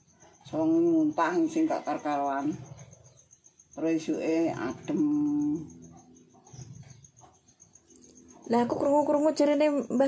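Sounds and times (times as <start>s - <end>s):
faint small sounds: 0.0s - 10.0s.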